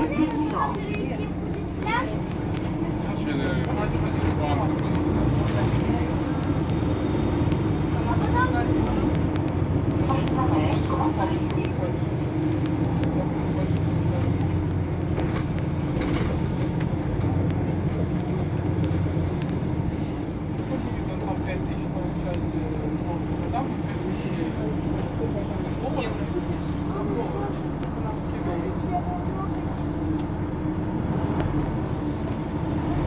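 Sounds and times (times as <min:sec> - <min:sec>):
bus engine idling: 0:00.0 - 0:33.0.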